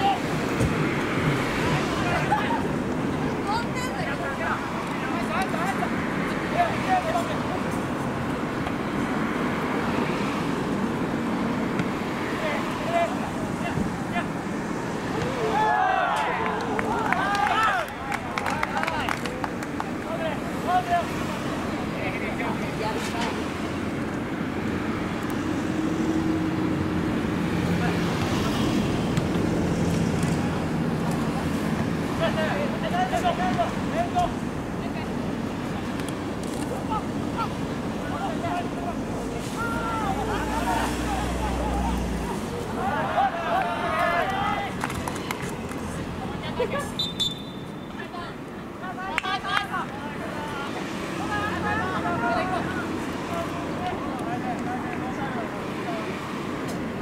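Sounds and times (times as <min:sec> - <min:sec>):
soccer players shouting: 0:00.0 - 0:09.0, 0:09.6 - 0:24.7, 0:30.3 - 0:56.4
outdoor background noise: 0:00.0 - 0:57.0.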